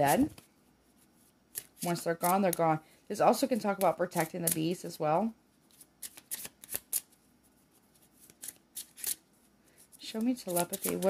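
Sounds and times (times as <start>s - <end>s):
cards being shuffled: 0.0s - 2.8s, 5.6s - 9.2s, 9.9s - 11.0s.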